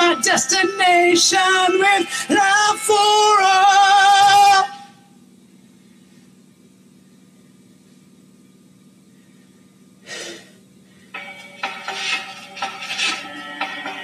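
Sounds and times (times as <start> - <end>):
steady low hum: 0.0 - 14.0
person breathing: 9.1 - 11.2
backing track with a beat: 11.2 - 14.0.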